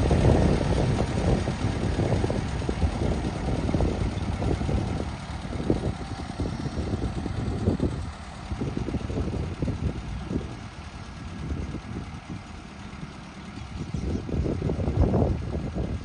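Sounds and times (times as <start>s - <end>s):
tractor engine rumbling: 0.0s - 16.0s.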